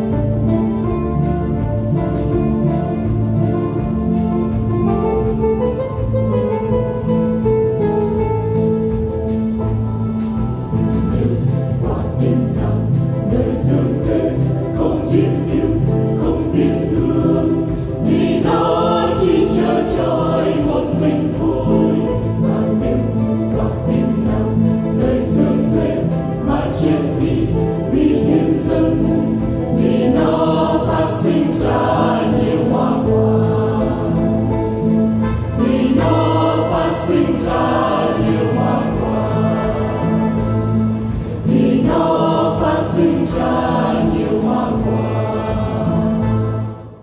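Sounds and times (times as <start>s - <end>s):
instrumental accompaniment: 0.0s - 47.0s
choir singing a hymn: 10.7s - 47.0s.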